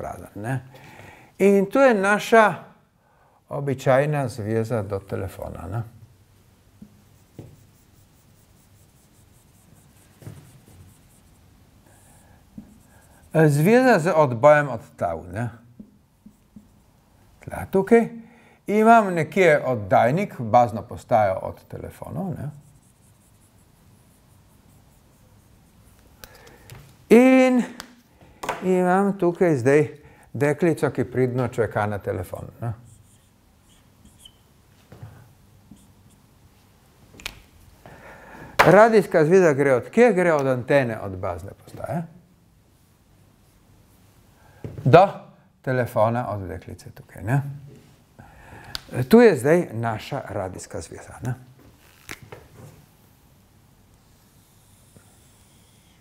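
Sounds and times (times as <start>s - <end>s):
marker scratching on whiteboard: 6.8s - 13.7s, 15.8s - 17.0s, 22.3s - 26.4s, 32.8s - 34.5s, 35.7s - 36.2s
marker squeaking on whiteboard: 32.8s - 34.6s, 35.7s - 36.2s.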